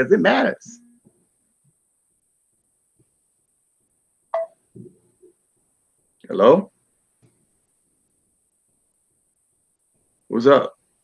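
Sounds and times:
faint low muffled sounds: 0:00.0 - 0:11.0.

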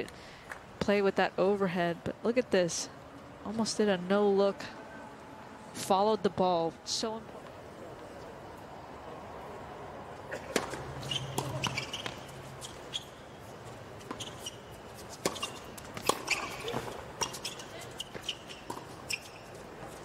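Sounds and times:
shoes squeaking on court: 0:10.3 - 0:20.0
tennis ball bouncing: 0:10.4 - 0:13.1, 0:14.0 - 0:19.4
tennis racket hitting ball: 0:10.5 - 0:12.3, 0:15.2 - 0:18.9.

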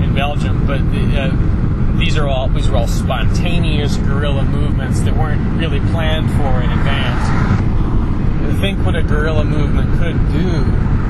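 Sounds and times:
constant low rumble: 0:00.0 - 0:11.0
man speaking haltingly: 0:02.0 - 0:07.3.

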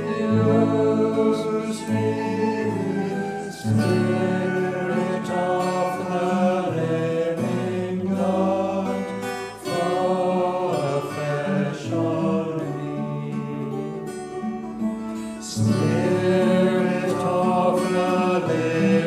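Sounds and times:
acoustic guitar: 0:00.0 - 0:19.0
hymn singing: 0:00.0 - 0:19.0.

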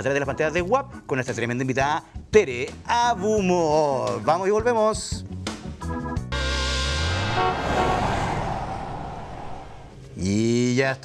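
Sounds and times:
car driving past: 0:06.4 - 0:10.2
music sting: 0:06.4 - 0:10.2.

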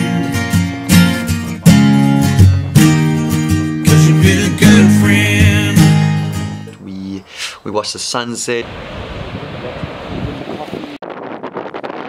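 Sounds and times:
wind buffeting microphone: 0:08.6 - 0:12.0.

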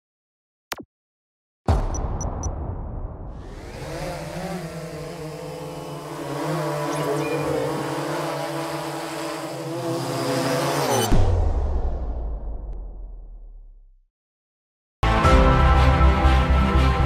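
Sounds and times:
drone propellers whirring: 0:03.3 - 0:11.2.

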